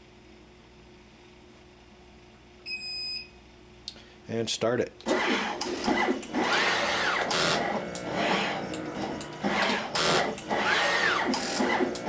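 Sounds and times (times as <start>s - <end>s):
machine humming: 5.0s - 12.0s.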